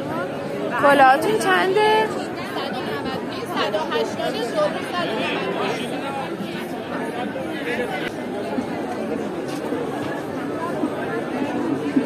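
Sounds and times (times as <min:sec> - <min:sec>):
crowd of shoppers chattering: 0:00.0 - 0:12.0.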